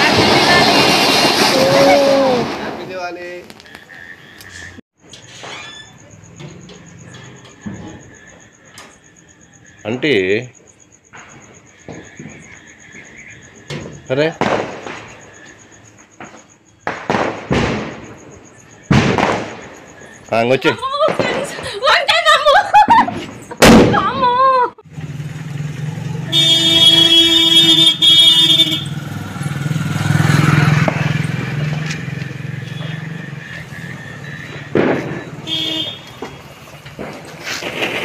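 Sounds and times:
firecracker bangs: 0.0 - 3.5, 13.7 - 15.4, 16.2 - 20.1, 22.9 - 24.3, 26.3 - 29.1, 29.7 - 38.0
sharp firework pop: 16.2 - 18.1, 18.8 - 19.7, 30.8 - 32.0, 34.5 - 35.4
whistle-like firework tone: 32.6 - 36.5.

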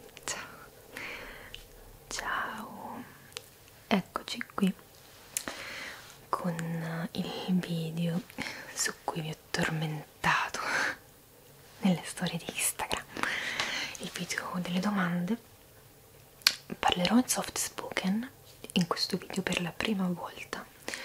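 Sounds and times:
woman speaking softly: 2.1 - 3.2, 3.9 - 4.8, 6.3 - 10.7, 11.8 - 13.2, 14.0 - 15.4, 16.7 - 20.7.

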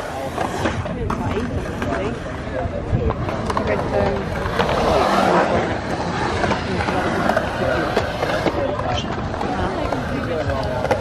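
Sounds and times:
people talking: 0.0 - 11.0
skateboard clacks: 0.0 - 11.0
skateboard wheels on concrete: 0.0 - 11.0.

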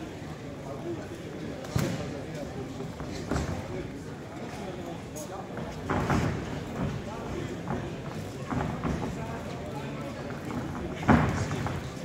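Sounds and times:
crowd murmur in large hall: 0.0 - 12.0.

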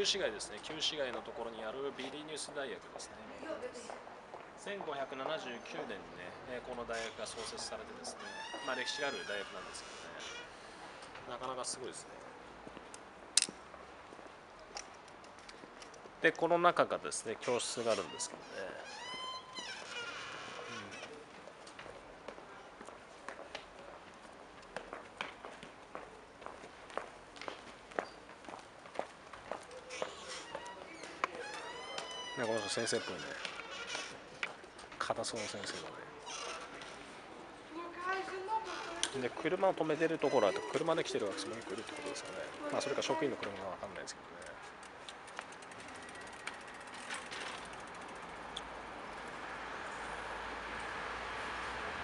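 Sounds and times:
hard-soled footsteps on stone steps: 21.2 - 32.6.

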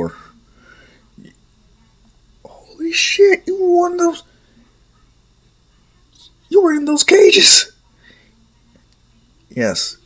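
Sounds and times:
person speaking: 2.5 - 4.3, 6.5 - 7.8.

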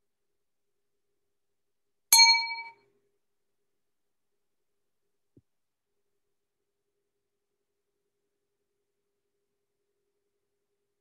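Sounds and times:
bright ding: 2.2 - 2.8.

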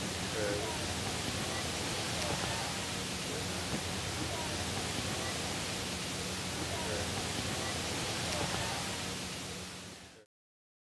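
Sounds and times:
steady hiss: 0.0 - 10.2.

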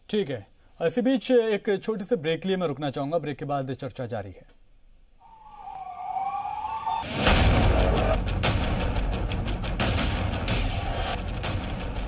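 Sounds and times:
siren wailing: 5.2 - 7.2.

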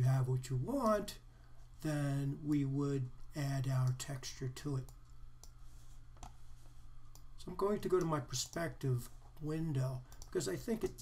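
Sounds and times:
low steady hum: 0.0 - 11.0
computer mouse clicks: 4.8 - 5.6, 10.1 - 11.0.

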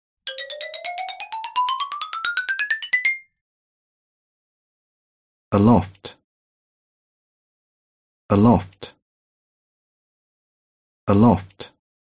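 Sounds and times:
bright rising intro jingle: 0.3 - 3.3.

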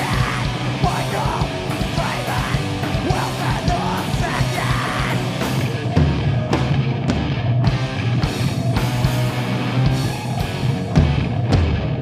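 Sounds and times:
punk rock band playing live: 0.0 - 12.0.

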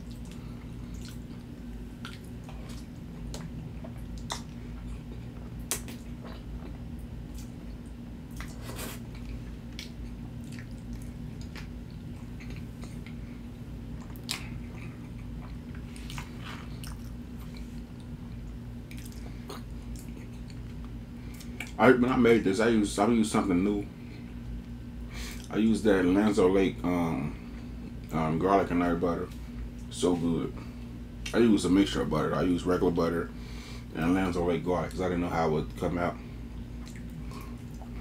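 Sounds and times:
chewing food: 0.0 - 13.3, 13.9 - 21.8, 36.6 - 38.0
steady low hum: 0.0 - 38.0.

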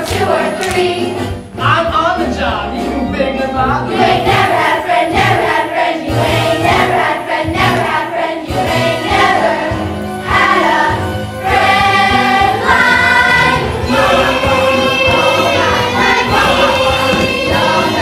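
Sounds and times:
group of voices singing: 0.0 - 1.9, 2.9 - 18.0
instrumental accompaniment: 0.0 - 18.0.

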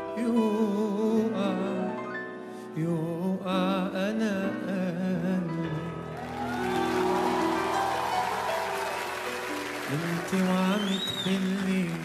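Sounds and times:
audience applause and cheering: 6.0 - 12.0
live band playing held notes: 6.0 - 12.0.

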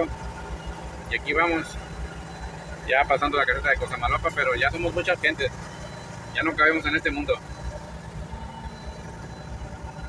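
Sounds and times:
truck diesel engine rumbling: 0.0 - 10.0.

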